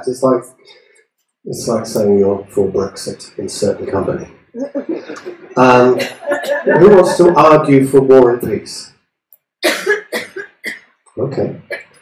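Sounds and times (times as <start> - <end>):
person coughing: 9.6 - 10.8.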